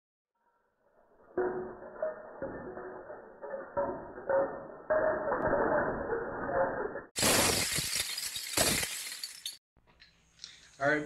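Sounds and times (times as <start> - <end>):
metal bottle caps pouring onto glass: 7.2 - 9.6.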